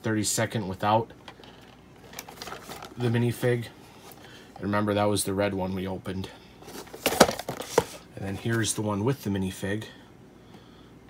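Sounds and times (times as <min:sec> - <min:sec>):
cardboard box handling noise: 0:02.0 - 0:03.0, 0:06.6 - 0:08.7.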